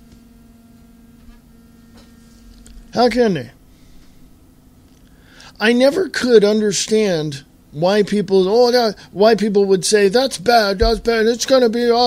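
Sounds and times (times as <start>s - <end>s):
faint electrical hum: 0.0s - 12.0s
man speaking: 3.0s - 3.6s, 5.6s - 12.0s.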